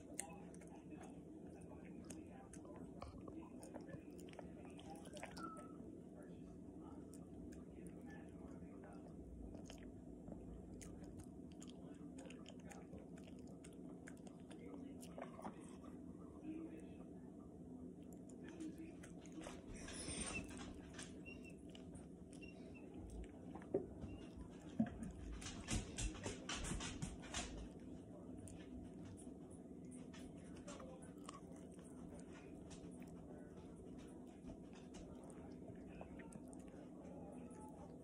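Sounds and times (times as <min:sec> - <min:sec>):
dog licking and chewing: 0:00.0 - 0:05.8, 0:06.8 - 0:16.1, 0:17.8 - 0:38.0.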